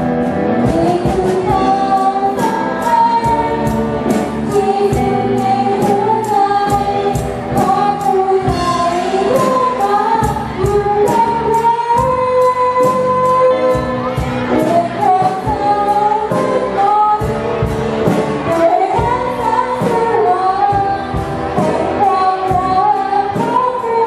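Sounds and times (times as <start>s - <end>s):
bass guitar: 0.0s - 24.0s
drums keeping a steady beat: 0.0s - 24.0s
girl singing into a microphone: 0.6s - 17.6s, 18.4s - 24.0s.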